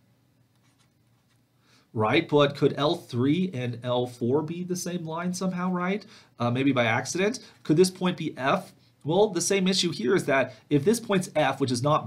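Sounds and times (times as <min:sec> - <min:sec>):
stylus tapping and scratching on screen: 0:00.4 - 0:01.5.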